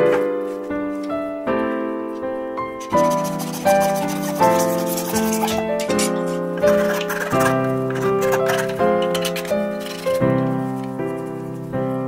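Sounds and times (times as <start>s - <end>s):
sustained keyboard music: 0.0s - 12.0s
hacksaw rasping: 2.8s - 10.2s.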